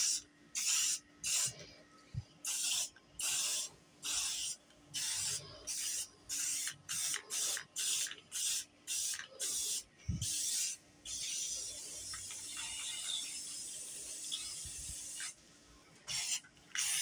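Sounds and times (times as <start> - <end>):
spray paint can hissing bursts: 0.0 - 1.6, 2.4 - 15.4, 16.1 - 17.0.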